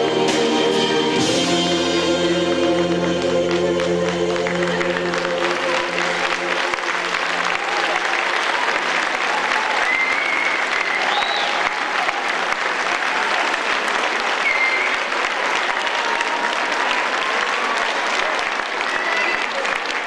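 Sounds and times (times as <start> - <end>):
audience applauding: 2.4 - 20.0.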